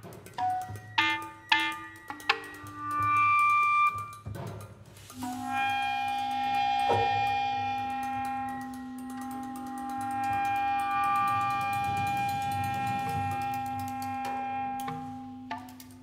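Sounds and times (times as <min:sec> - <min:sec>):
faint clicks: 0:04.1 - 0:16.0
clarinets holding long notes: 0:05.1 - 0:15.9.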